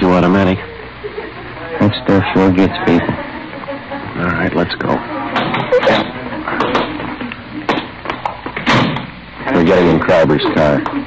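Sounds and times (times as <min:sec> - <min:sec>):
sharp knocks: 0:07.7 - 0:09.1.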